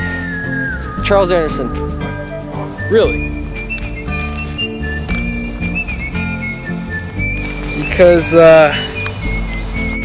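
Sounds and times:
whistled melody: 0.0 - 10.0.

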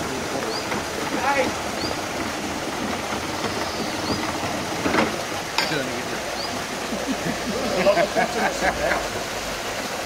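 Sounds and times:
water rushing into lock: 0.0 - 10.0.

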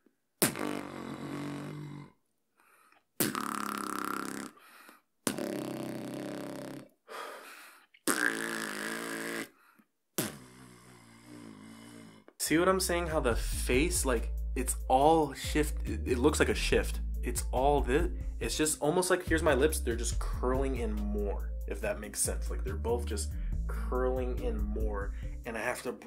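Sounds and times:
beatboxer lip roll bass: 0.4 - 2.1, 3.2 - 4.6, 5.2 - 6.9, 8.0 - 9.5, 10.2 - 11.7, 15.7 - 25.7.

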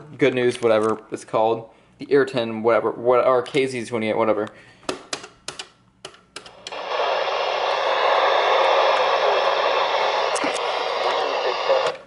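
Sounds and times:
radio static: 6.7 - 12.0.

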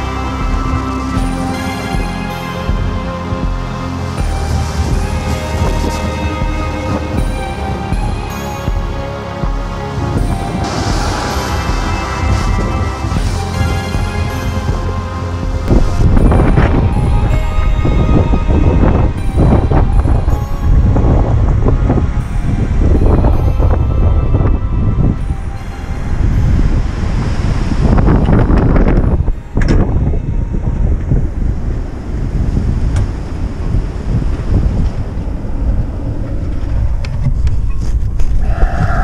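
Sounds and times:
gusty wind buffeting microphone: 2.7 - 39.0.

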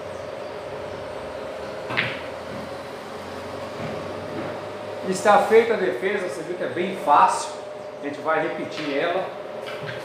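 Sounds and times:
steady hum: 0.0 - 10.0
pool cue striking ball: 1.9 - 2.7.

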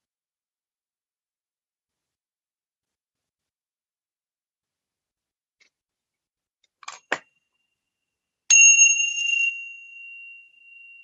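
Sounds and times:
metallic bell-like ring: 8.5 - 11.0.

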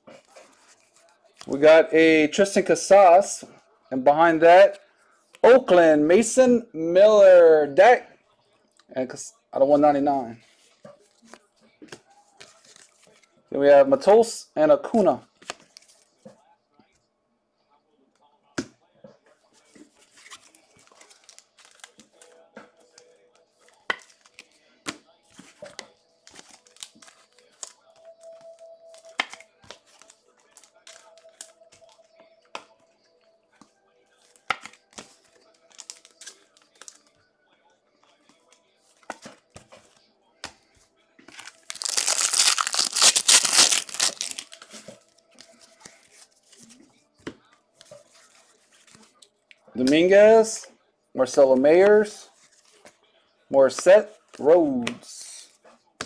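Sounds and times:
cards being handled: 0.2 - 1.6, 10.4 - 13.3, 15.4 - 16.2, 19.6 - 32.8, 33.6 - 37.2, 38.0 - 50.5
wrappers crinkling: 20.1 - 22.2, 35.5 - 37.0, 41.3 - 46.8
wrapper ripping: 41.3 - 44.8.

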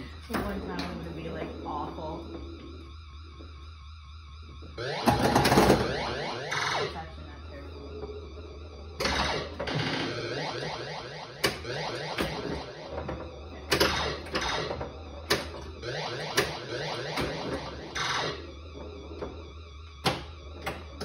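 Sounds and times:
pinball electronic pitch sweeps: 0.0 - 21.0.

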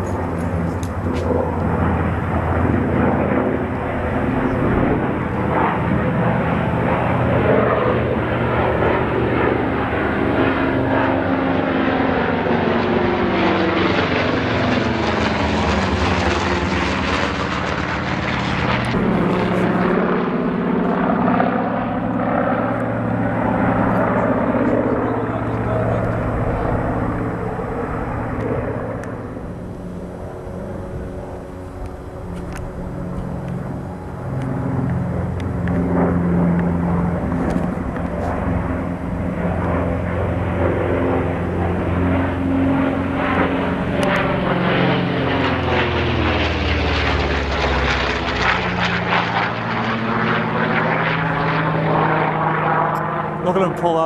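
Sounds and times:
propeller planes flying overhead: 0.0 - 54.0.

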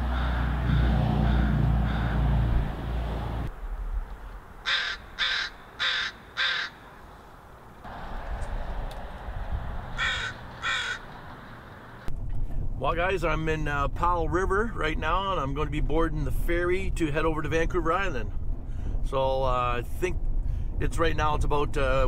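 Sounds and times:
crow cawing: 0.0 - 2.3, 4.6 - 6.9, 10.0 - 11.1
low rumble: 0.0 - 4.6.

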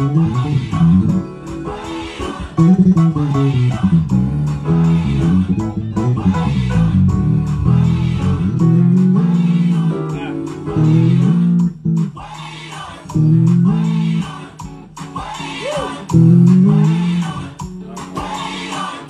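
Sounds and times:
bass guitar melodic line: 0.0 - 12.3, 13.1 - 14.8, 16.0 - 18.2
steady beat: 0.0 - 19.0.

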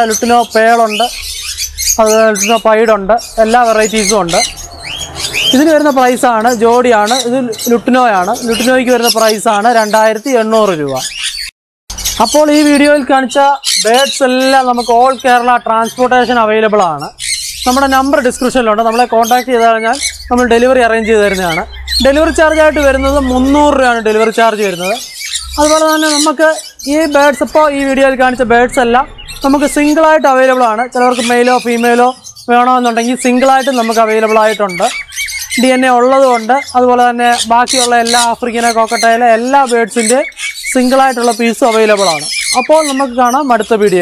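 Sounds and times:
birds chirping: 0.0 - 44.0
parrot squawking: 0.0 - 44.0
man talking: 12.2 - 25.0, 25.6 - 35.0.

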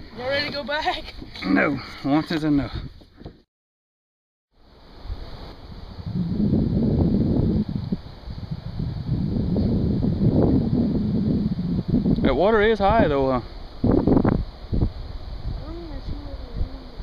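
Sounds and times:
wind buffeting microphone: 0.0 - 1.4, 5.0 - 17.0.

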